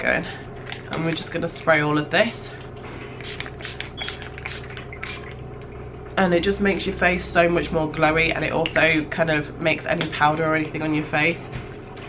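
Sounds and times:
spray bottle hissing sprays: 3.2s - 5.3s.

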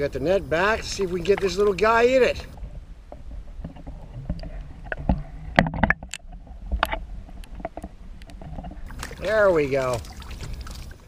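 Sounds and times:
water splashing: 0.1s - 11.0s.

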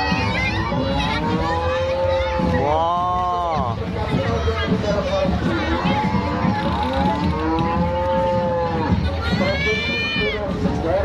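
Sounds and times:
crowd noise: 0.0s - 11.0s
cow mooing: 5.8s - 8.8s.

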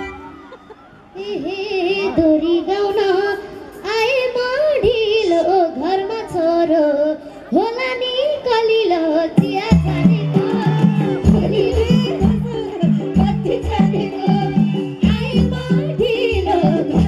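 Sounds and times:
low accompaniment beats: 9.4s - 17.0s.

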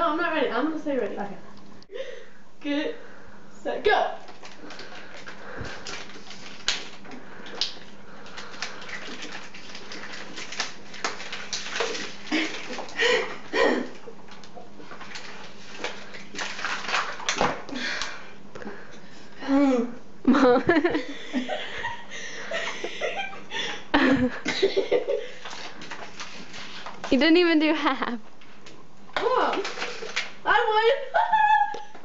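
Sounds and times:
plastic bottles crackling: 4.2s - 18.2s, 25.2s - 27.2s, 29.2s - 30.4s
people gulping water: 4.3s - 18.6s.

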